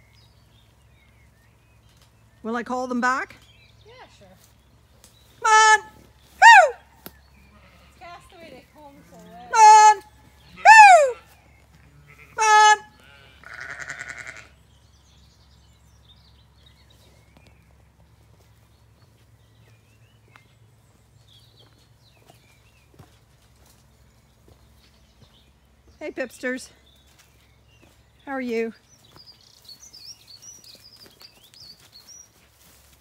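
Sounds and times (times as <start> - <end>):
shepherd calling: 5.4 - 14.6
sheep bleating: 7.4 - 8.2, 9.6 - 14.6.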